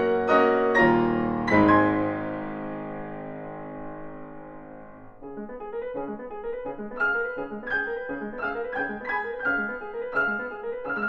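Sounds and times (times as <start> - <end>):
piano duet: 0.0 - 11.0
quick detached piano notes: 0.0 - 11.0.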